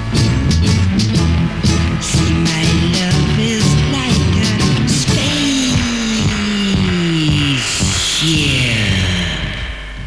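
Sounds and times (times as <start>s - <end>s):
psychedelic pop record playing: 0.0s - 10.0s.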